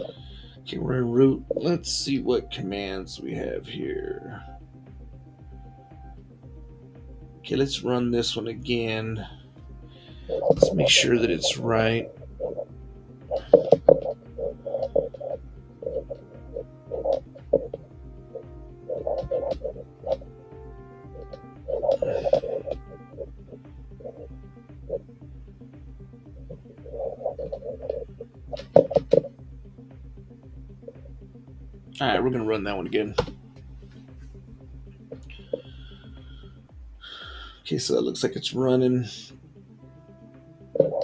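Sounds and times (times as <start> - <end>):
background music with low beat: 0.0 - 41.0.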